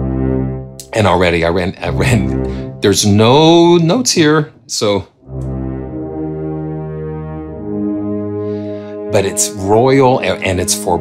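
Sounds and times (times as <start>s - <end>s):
sustained low brass notes: 0.0s - 11.0s.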